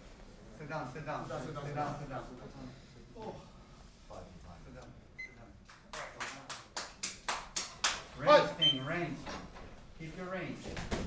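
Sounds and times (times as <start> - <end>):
sharp hand claps: 5.6 - 8.1.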